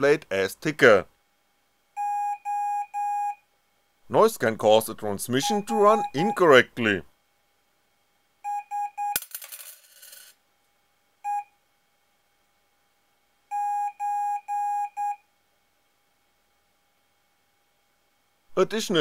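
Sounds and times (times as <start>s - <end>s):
morse code beeps: 2.0s - 3.4s, 5.4s - 6.4s, 8.5s - 9.2s, 11.3s - 11.5s, 13.5s - 15.2s
coin clinking on table: 9.2s - 10.4s.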